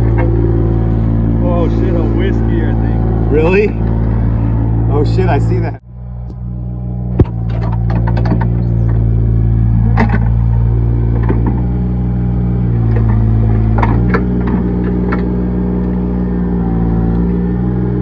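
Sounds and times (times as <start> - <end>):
excavator engine running: 0.0 - 18.0.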